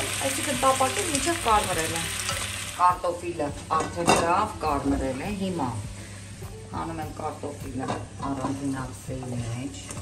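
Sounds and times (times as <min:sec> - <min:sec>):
hot oil hissing in frying pan: 0:00.0 - 0:02.9.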